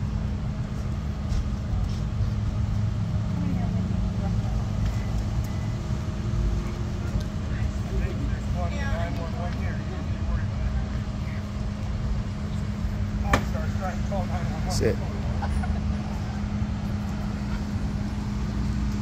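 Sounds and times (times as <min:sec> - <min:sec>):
vehicle engine idling: 0:00.0 - 0:19.0.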